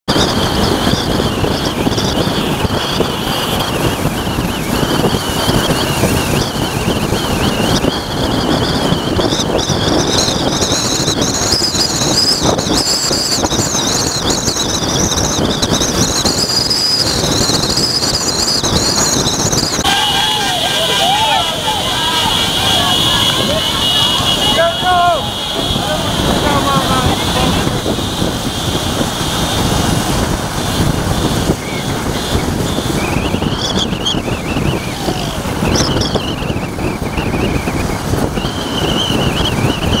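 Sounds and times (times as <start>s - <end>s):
road noise of cars and motorcycles: 0.0s - 40.0s
high wavering squeal: 0.1s - 29.9s, 30.6s - 40.0s
voices: 19.7s - 29.5s, 30.4s - 36.5s.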